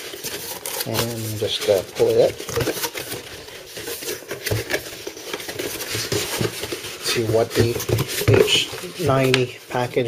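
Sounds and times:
cardboard rustling and scraping: 0.0s - 10.0s.

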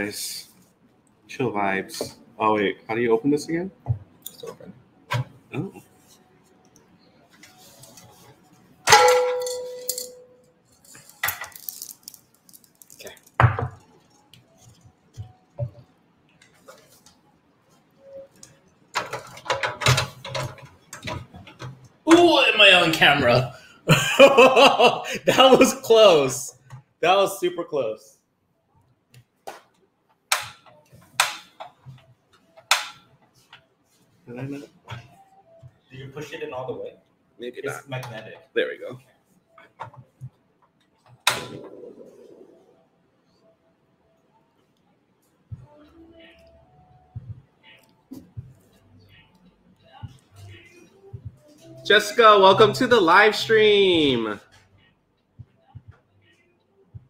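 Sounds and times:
metallic clang ringing: 8.9s - 10.5s
plastic and metal clicks and knocks: 19.0s - 21.8s.

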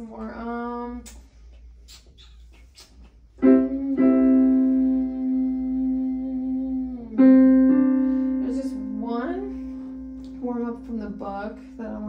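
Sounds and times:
piano notes held: 3.4s - 12.0s.

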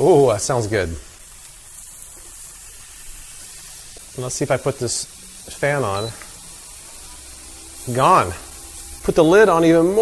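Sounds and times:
extraction fan humming: 0.0s - 10.0s
steak sizzling on grill: 0.0s - 10.0s.

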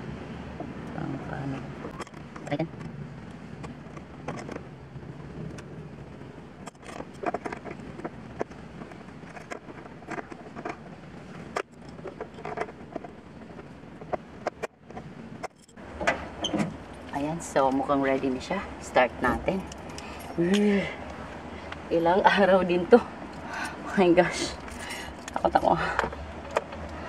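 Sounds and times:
low background rumble: 0.0s - 27.0s.

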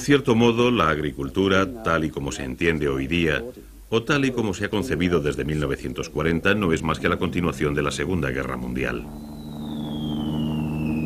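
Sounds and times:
low steady drone: 5.3s - 11.0s
falling bomb whistle: 9.0s - 11.0s.

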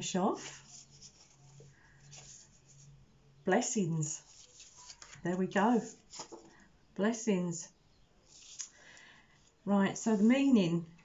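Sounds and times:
paper pages rustling: 0.5s - 2.9s, 4.2s - 6.6s.

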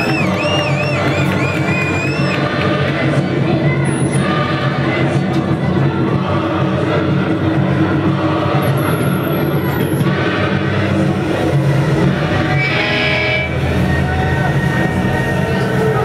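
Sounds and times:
thin high whistle: 0.0s - 2.4s
electric guitar and bass: 10.7s - 16.0s.

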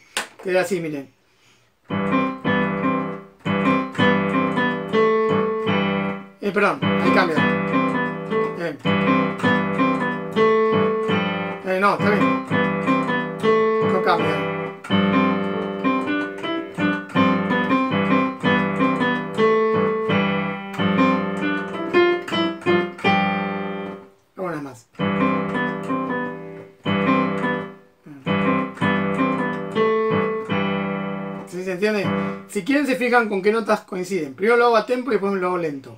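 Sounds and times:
digital piano chords: 1.7s - 33.9s.

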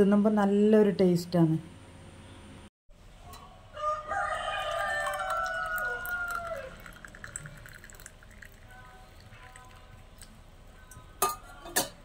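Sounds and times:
rooster crowing: 3.7s - 7.0s
drink pouring into glass: 4.6s - 10.4s.

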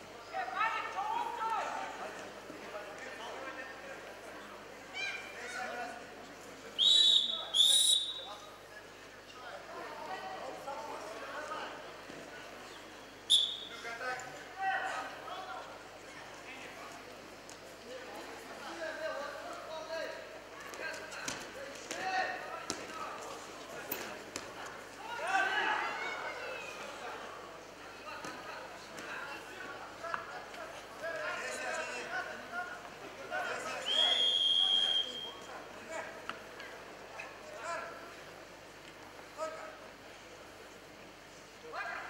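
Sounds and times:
referee's whistle blasts: 6.8s - 8.4s, 13.3s - 13.8s, 33.8s - 35.5s.

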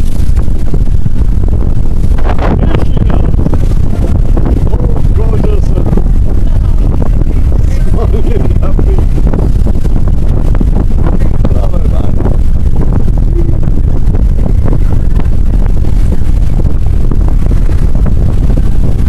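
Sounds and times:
wind buffeting microphone: 0.0s - 19.0s
faint voices: 2.2s - 9.5s.

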